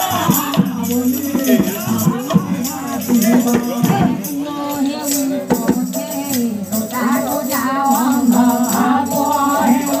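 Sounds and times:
rattling jingling percussion: 0.0s - 10.0s.

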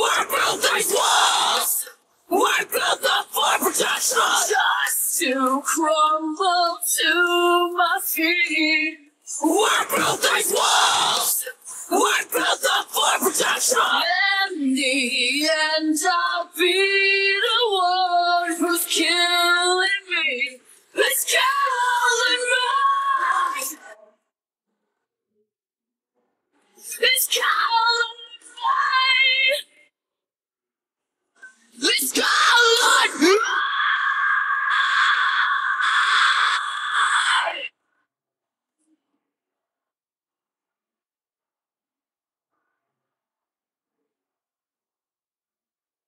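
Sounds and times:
pitch-sliding vocal sounds: 0.0s - 5.8s, 9.3s - 15.6s, 21.0s - 24.0s, 31.8s - 37.7s
woman singing with vibrato: 0.0s - 23.9s.

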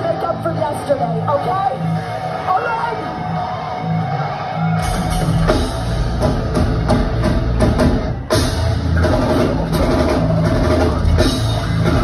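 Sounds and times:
metal band playing live: 4.6s - 12.0s
bass drum pounding: 4.8s - 12.0s.

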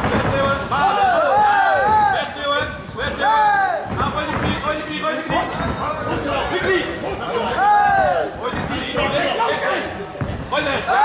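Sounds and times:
crowd noise: 0.0s - 11.0s
people yelling: 0.6s - 4.1s, 6.1s - 9.9s, 10.6s - 11.0s.

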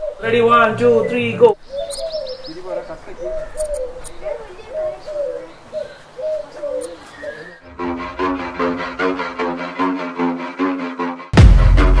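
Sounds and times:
bird cooing: 0.0s - 7.7s
held low note: 7.6s - 11.2s.

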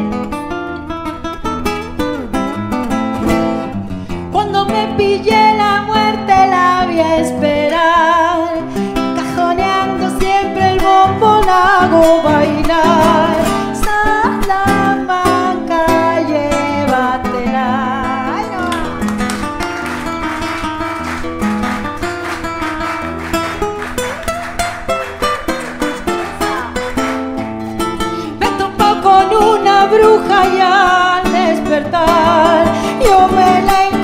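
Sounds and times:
acoustic guitar strumming and plucking: 0.0s - 34.0s.

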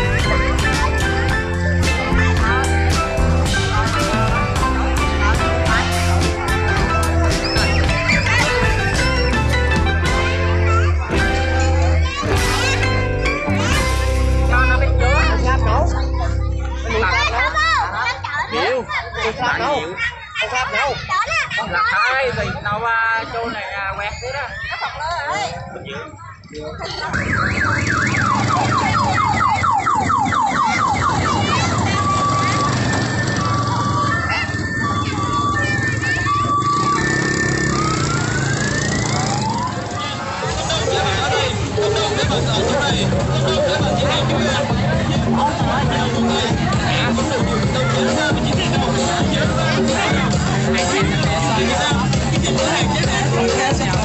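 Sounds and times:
loud music with deep bass: 0.0s - 19.0s, 40.5s - 54.0s
children shouting and chattering: 0.0s - 54.0s.

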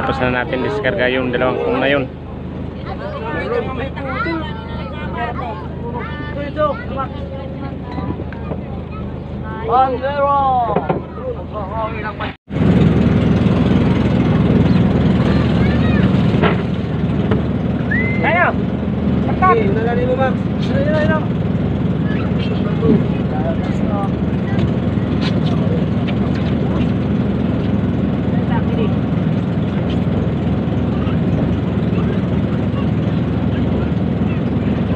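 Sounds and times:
chatter of voices: 0.0s - 12.4s, 14.0s - 16.7s, 17.9s - 34.9s
boat engine humming: 0.0s - 34.9s.

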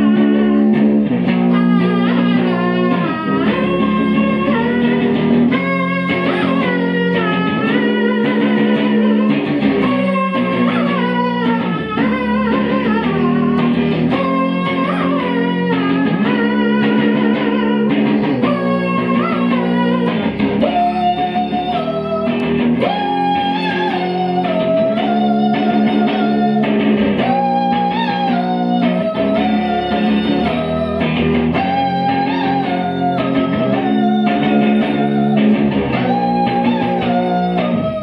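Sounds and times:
electric guitar through amplifier: 0.0s - 38.0s.

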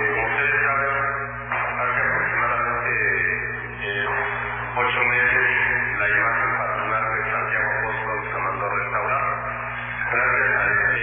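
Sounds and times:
steady low hum: 0.0s - 11.0s
voice over telephone line: 0.0s - 11.0s.

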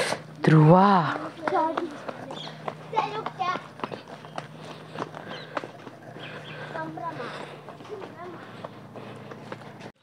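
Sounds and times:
footsteps on concrete: 0.0s - 10.0s
voices calling out: 0.0s - 10.0s
child running: 0.1s - 10.0s.

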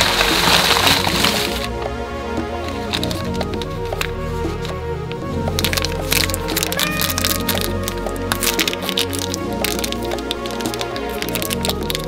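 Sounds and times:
plastic wrapper crinkling: 0.0s - 1.7s, 5.6s - 12.0s
background music: 0.0s - 12.0s.

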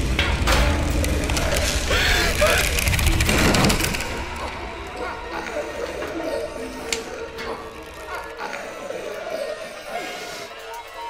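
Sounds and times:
rapid clicking and rattling: 0.0s - 8.6s.

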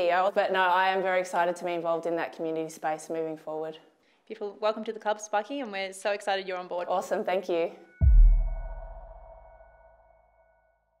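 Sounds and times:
deep bass boom: 8.0s - 9.8s.

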